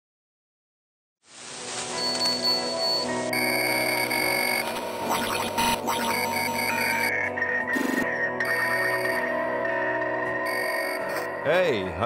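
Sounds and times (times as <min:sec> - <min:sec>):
glitchy electronic bursts: 0:01.9 - 0:09.2
electronic tones and drones: 0:02.0 - 0:09.6, 0:10.4 - 0:11.3.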